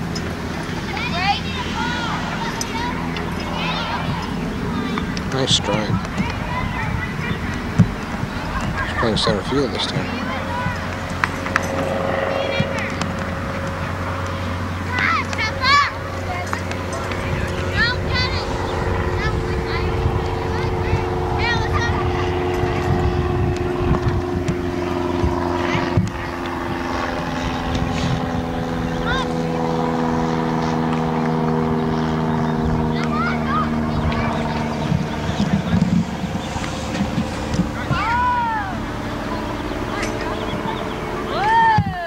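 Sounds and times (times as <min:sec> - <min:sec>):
children calling: 0:00.0 - 0:42.0
propeller aircraft droning overhead: 0:00.0 - 0:42.0.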